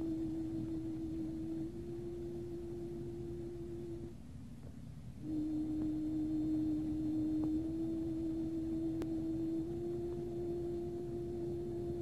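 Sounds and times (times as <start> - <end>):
old soundtrack rumble and hiss: 0.0 - 12.0
held musical note: 5.2 - 12.0.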